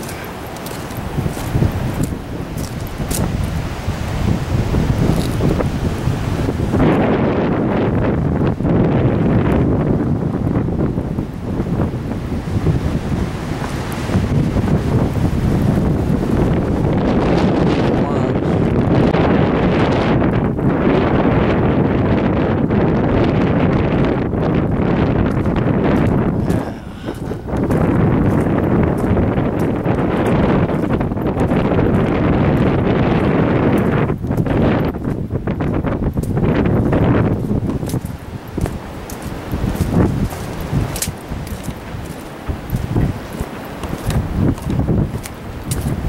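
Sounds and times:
wind blowing across microphone: 0.0s - 46.0s.

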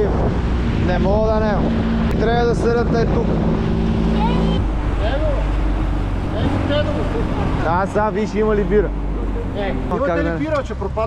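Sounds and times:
wind on microphone: 0.0s - 8.2s
boat motor humming: 0.0s - 11.0s
low rumble: 0.0s - 11.0s.

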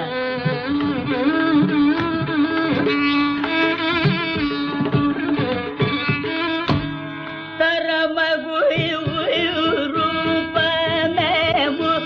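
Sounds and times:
man singing with ornaments: 7.8s - 12.0s.

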